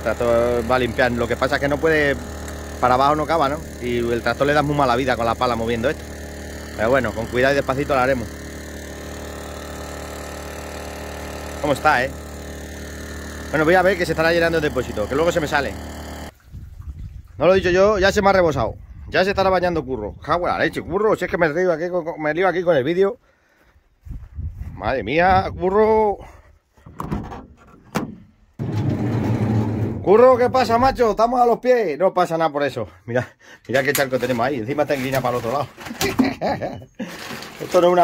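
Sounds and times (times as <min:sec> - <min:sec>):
motor drone: 0:00.0 - 0:16.3
water pump engine running: 0:00.0 - 0:16.4.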